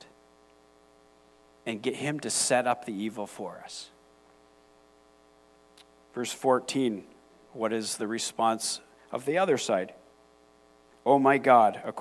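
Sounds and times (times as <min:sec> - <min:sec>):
faint mains hum: 0:00.0 - 0:12.0
soft click: 0:05.7 - 0:06.0.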